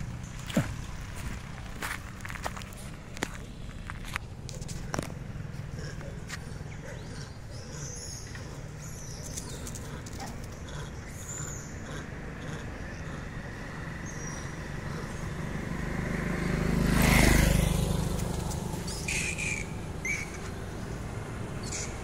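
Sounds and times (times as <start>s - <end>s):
footsteps crunching through dry leaves: 0.0s - 5.2s
car approaching: 0.0s - 22.0s.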